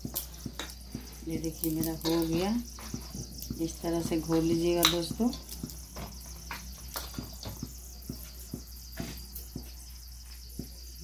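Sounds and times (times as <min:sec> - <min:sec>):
hand mixing batter in steel bowl: 0:00.0 - 0:09.8.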